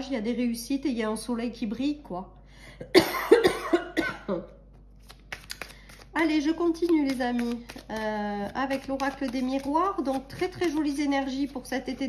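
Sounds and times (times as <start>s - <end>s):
woman coughing: 2.8s - 4.6s.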